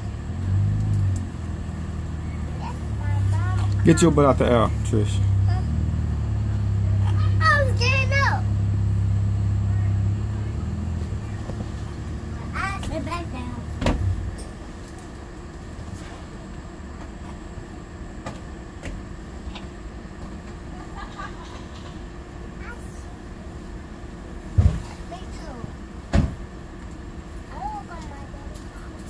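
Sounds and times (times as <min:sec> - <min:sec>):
low outdoor rumble: 0:00.0 - 0:29.0
sharp thumps: 0:13.8 - 0:14.6.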